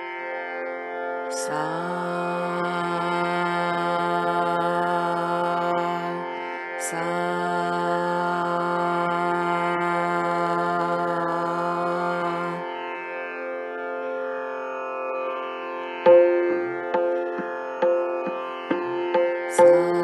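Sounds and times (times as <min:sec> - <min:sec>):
electronic drone: 0:15.0 - 0:20.0
woman singing a held note: 0:19.4 - 0:20.0.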